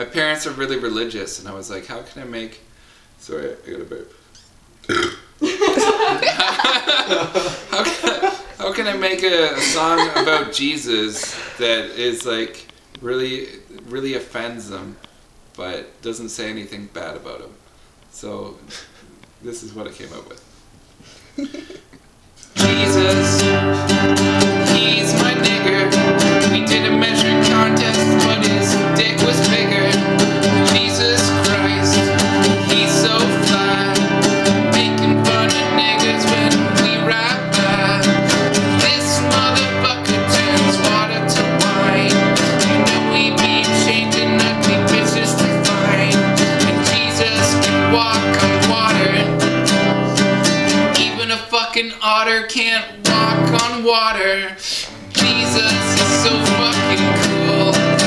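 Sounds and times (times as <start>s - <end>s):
classical guitar strummed: 22.6s - 51.4s, 53.0s - 53.9s, 54.9s - 58.0s.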